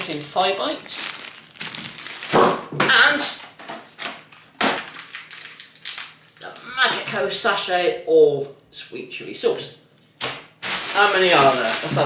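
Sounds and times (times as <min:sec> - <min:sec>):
plastic packaging crinkling: 0:00.0 - 0:02.7, 0:03.9 - 0:06.6, 0:10.2 - 0:12.0.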